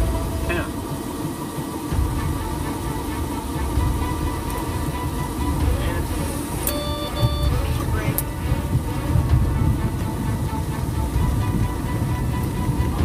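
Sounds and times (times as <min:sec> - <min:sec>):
airliner cockpit rumble: 0:00.0 - 0:13.0
short electronic beep: 0:06.7 - 0:07.6.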